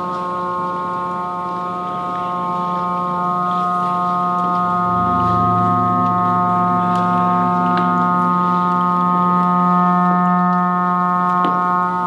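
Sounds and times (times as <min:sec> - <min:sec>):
organ-like drone chord: 0:00.7 - 0:12.0.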